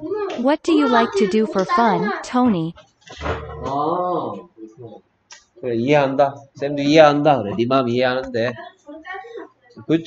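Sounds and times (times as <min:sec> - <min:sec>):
person speaking: 0:00.4 - 0:02.7.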